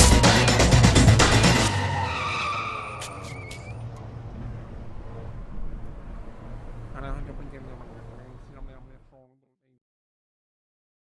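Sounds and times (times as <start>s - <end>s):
tyres squealing: 0.0s - 4.2s.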